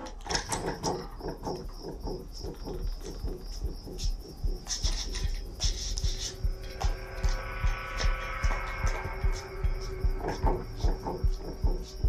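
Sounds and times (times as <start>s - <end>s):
high insect-like chirping: 0.0s - 12.0s.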